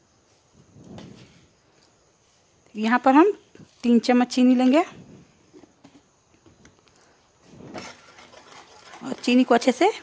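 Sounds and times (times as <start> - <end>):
metal spatula stirring in a pan: 7.7 - 9.8.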